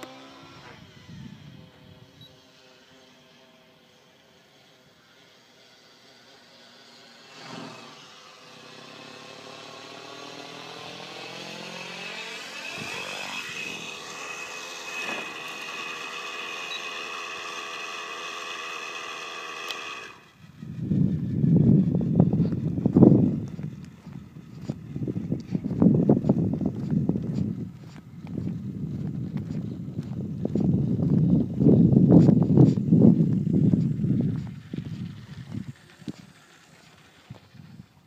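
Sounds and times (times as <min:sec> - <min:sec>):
model helicopter engine whine: 0:00.0 - 0:38.0
low thumps and rumbling: 0:20.6 - 0:36.3.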